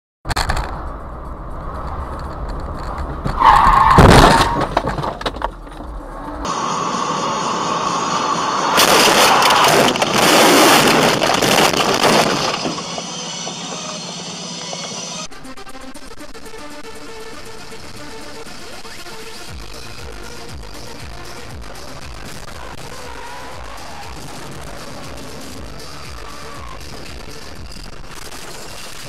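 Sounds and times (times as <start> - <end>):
low road rumble: 0.2 - 29.0
loud car crash: 3.0 - 15.3.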